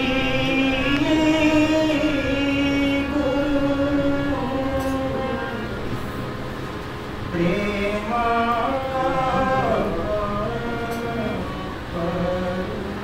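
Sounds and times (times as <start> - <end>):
person singing long notes: 0.0 - 6.0, 7.3 - 13.0.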